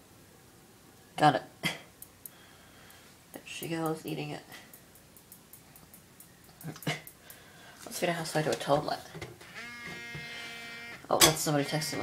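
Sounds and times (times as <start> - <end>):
mobile phone vibrating: 9.5 - 11.0.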